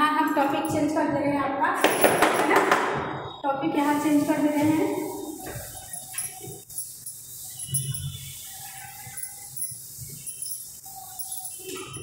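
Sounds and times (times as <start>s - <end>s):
duster rubbing chalkboard: 3.7s - 12.0s.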